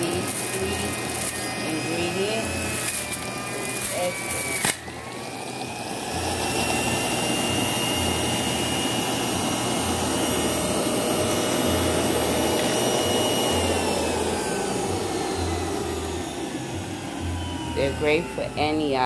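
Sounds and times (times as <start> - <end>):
juicer motor whining under load: 0.0 - 19.0.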